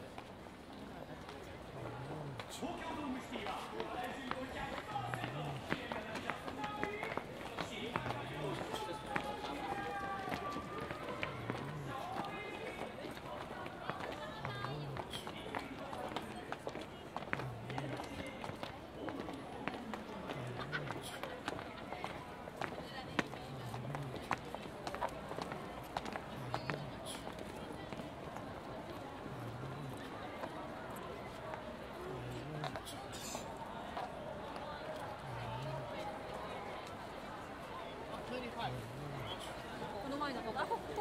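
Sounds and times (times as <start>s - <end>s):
crowd footsteps on stone: 0.0s - 41.0s
people chattering: 0.0s - 41.0s.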